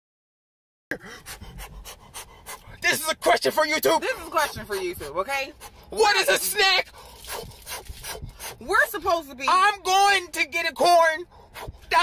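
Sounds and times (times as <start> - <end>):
man panting: 0.9 - 3.2, 3.9 - 8.6, 11.2 - 12.0
man speaking: 2.8 - 5.1, 5.9 - 6.9.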